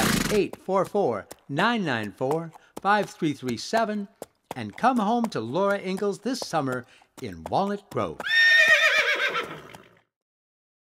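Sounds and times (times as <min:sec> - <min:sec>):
horse whinnying: 0:08.2 - 0:10.0.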